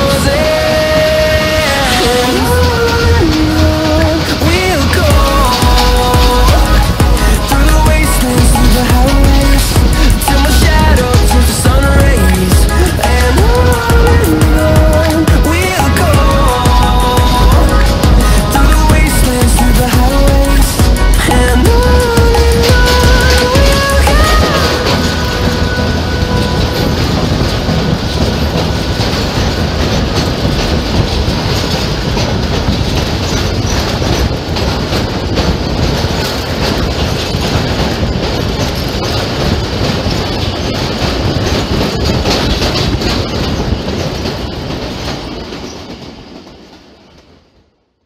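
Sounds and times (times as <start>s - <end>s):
train rumble and rush: 0.0s - 48.0s
wheels clattering over rail joints: 0.0s - 48.0s.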